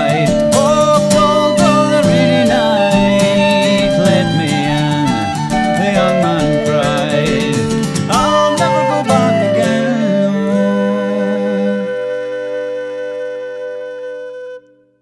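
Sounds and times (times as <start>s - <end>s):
fiddle: 0.0s - 12.6s
acoustic guitar strummed chords: 0.0s - 13.5s
flute: 0.0s - 15.0s.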